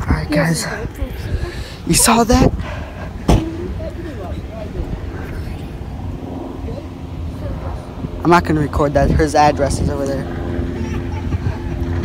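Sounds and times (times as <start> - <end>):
faint distant voices: 0.0 - 12.0
low steady rumble: 0.0 - 12.0.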